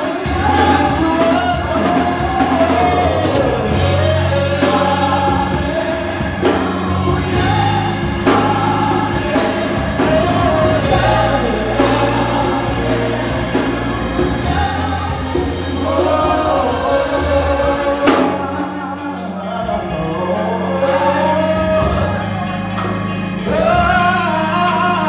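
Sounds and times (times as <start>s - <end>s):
man singing into microphone: 0.0s - 25.0s
sustained instrumental accompaniment: 0.0s - 25.0s
women backing vocals: 0.0s - 25.0s.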